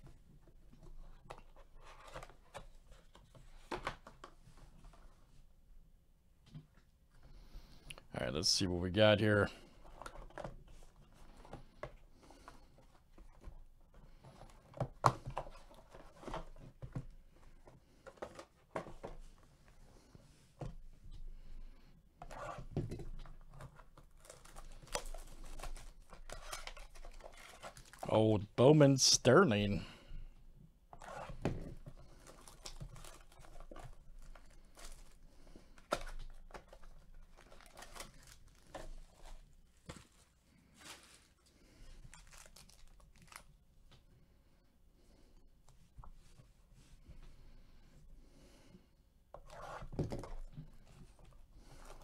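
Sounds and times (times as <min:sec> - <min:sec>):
foil pack crinkling: 0:24.0 - 0:28.1, 0:35.8 - 0:43.5.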